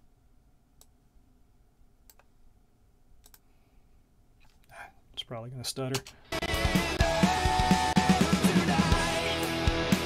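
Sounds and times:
computer mouse clicks: 0:02.0 - 0:02.4, 0:03.2 - 0:03.5.

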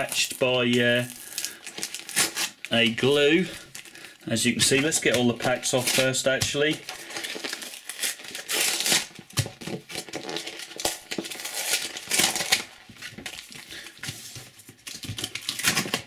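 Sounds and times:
sticker packets crinkling: 0:00.0 - 0:14.2.

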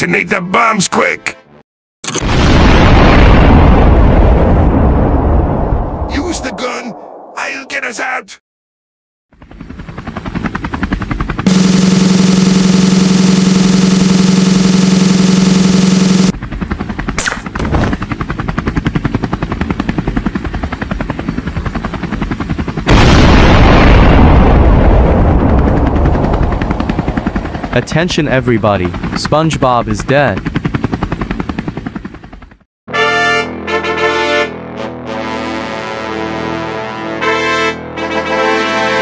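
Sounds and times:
cartoon bomb explosion: 0:02.2 - 0:06.1, 0:22.9 - 0:26.0
loud steady buzzing tone: 0:11.5 - 0:16.3.

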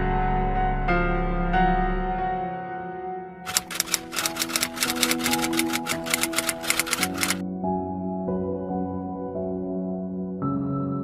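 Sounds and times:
soft background music: 0:00.0 - 0:11.0
typewriter key clicks: 0:03.5 - 0:07.4.

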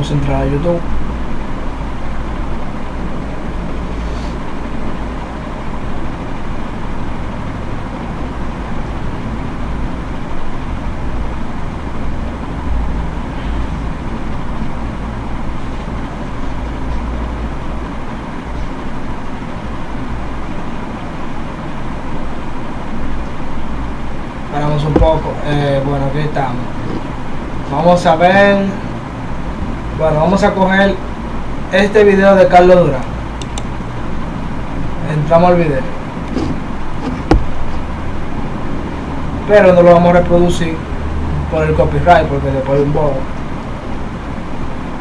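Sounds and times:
faint steady hum: 0:00.0 - 0:45.0
low rumbling background noise: 0:00.0 - 0:45.0.

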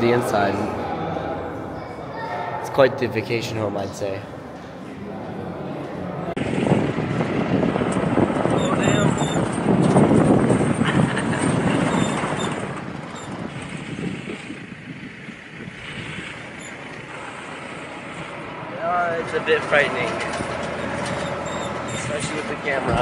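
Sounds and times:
vehicle engine: 0:00.0 - 0:23.0
wind rushing over microphone: 0:04.2 - 0:23.0.

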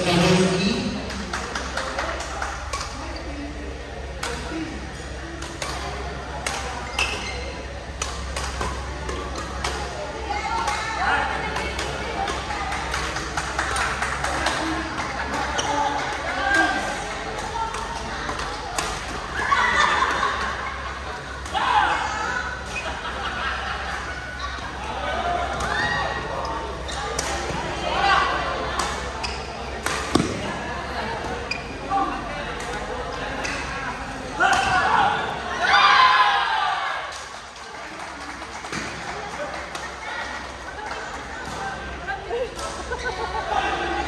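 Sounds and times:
murmur of voices: 0:00.0 - 0:44.0
rackets striking shuttlecocks: 0:29.8 - 0:30.6.

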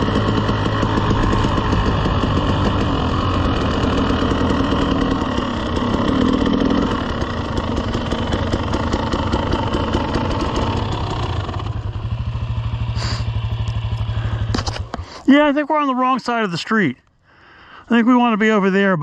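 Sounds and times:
two-stroke dirt bike engine: 0:00.0 - 0:16.5.

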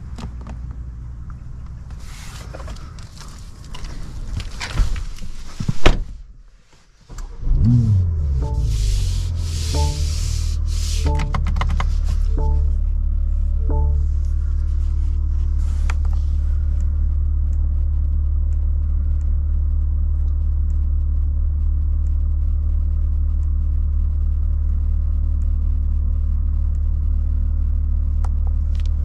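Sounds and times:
car engine idling: 0:06.2 - 0:29.0
faint clicks: 0:15.8 - 0:27.2.

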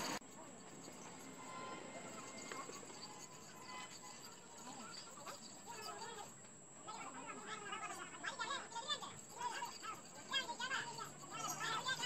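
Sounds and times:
thin steady high whistle: 0:00.0 - 0:06.3.

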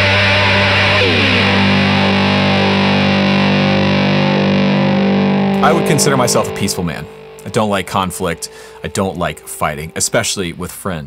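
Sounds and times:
distorted slide guitar: 0:00.0 - 0:09.8.

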